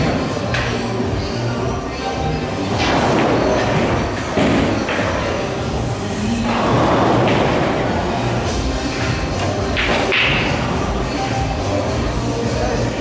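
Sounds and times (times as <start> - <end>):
background music: 0.0 - 13.0
pool balls clicking: 2.6 - 12.0.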